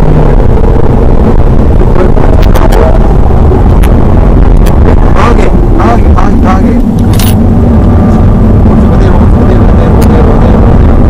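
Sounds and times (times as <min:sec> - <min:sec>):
car engine inside cabin: 0:00.0 - 0:11.0
road noise: 0:00.0 - 0:11.0.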